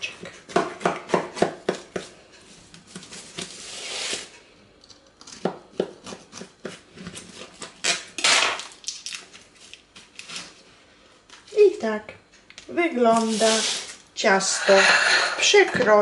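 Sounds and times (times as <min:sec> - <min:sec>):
scrape against baking dish: 0:13.2 - 0:15.7.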